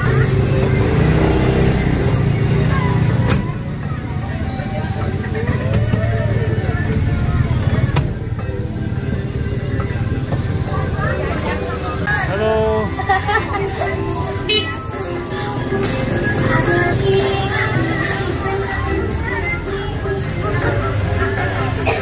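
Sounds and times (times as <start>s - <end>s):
motor scooter passing: 0.0s - 21.8s
music: 0.0s - 22.0s
passenger trolley engine running: 0.0s - 22.0s
voices: 0.0s - 22.0s.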